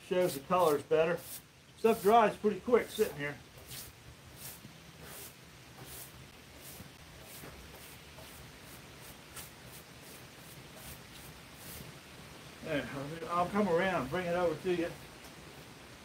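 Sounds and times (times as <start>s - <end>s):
brush sweeping sawdust off wood: 0.0s - 12.1s.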